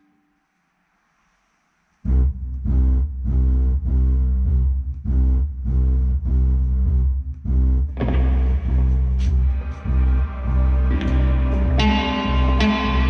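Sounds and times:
loud guitar and bass music: 8.0 - 13.0.

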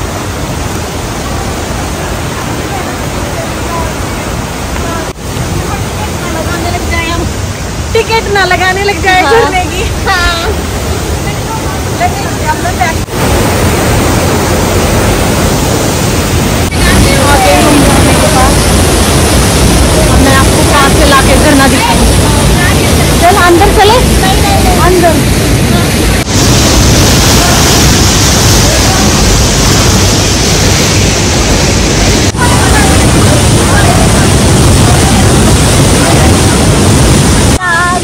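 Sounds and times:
waterfall rushing: 0.0 - 38.0.

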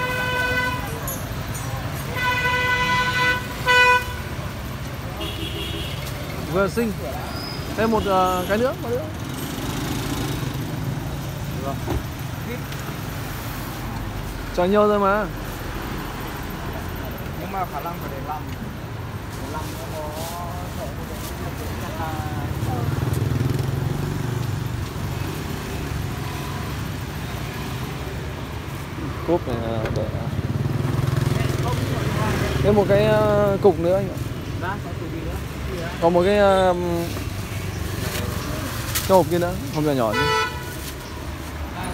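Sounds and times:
street traffic: 0.0 - 41.9.

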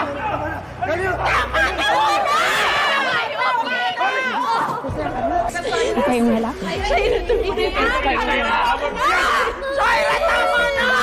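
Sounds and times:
voices shouting and yelling: 0.0 - 11.0.

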